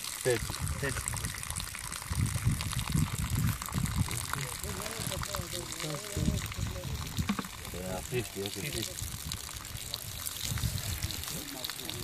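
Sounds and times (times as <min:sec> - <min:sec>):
water trickling into tub: 0:00.0 - 0:12.0.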